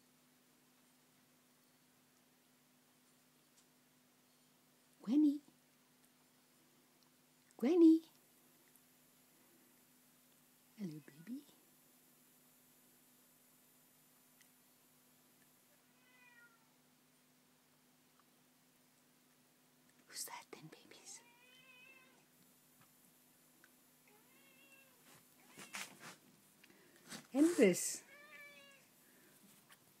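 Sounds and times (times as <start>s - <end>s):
cat meowing: 15.9s - 16.7s, 21.2s - 22.2s, 24.1s - 26.0s, 28.1s - 28.9s.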